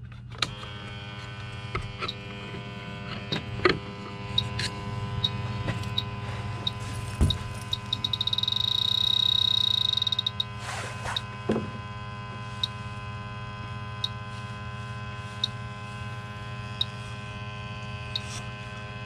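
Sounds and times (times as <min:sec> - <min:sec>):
pump humming: 0:00.4 - 0:19.0
sharp electronic ticks: 0:04.4 - 0:06.8, 0:07.6 - 0:10.5
steady high beep: 0:06.0 - 0:10.5.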